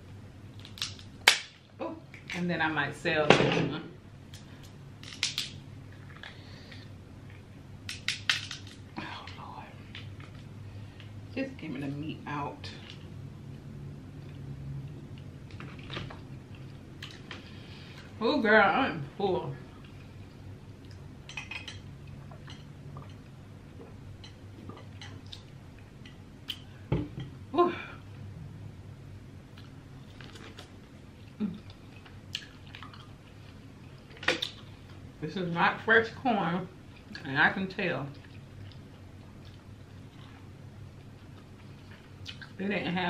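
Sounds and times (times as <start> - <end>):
low steady hum: 0.0 - 43.0
crab shell cracking: 0.6 - 1.6
chewing: 29.5 - 34.7, 38.1 - 42.6.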